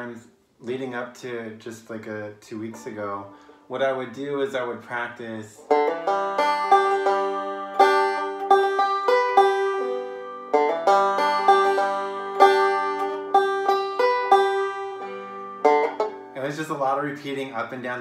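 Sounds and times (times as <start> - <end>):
finger-picked banjo: 0.0 - 18.0.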